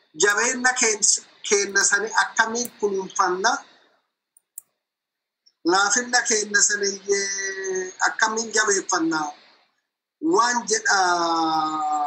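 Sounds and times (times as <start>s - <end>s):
man speaking: 0.2s - 3.8s, 5.6s - 9.4s, 10.2s - 12.0s.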